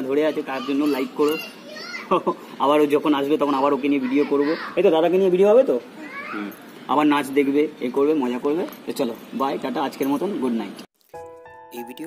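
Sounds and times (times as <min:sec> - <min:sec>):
child's voice: 0:00.2 - 0:02.2, 0:04.0 - 0:04.8, 0:05.9 - 0:06.6
man talking: 0:11.7 - 0:12.0.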